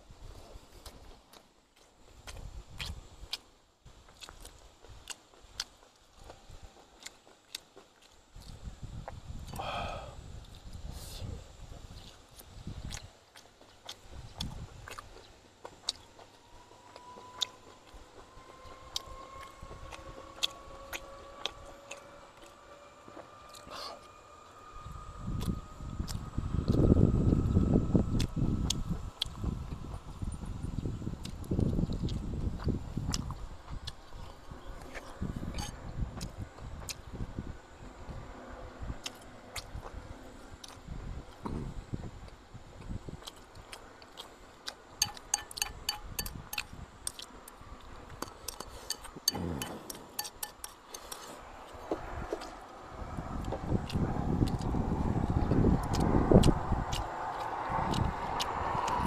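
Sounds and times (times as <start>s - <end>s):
man chewing and smacking: 0.3s - 9.6s, 10.4s - 24.1s, 25.4s - 26.8s, 28.2s - 37.1s, 39.0s - 41.5s, 42.2s - 52.7s, 53.4s - 59.0s.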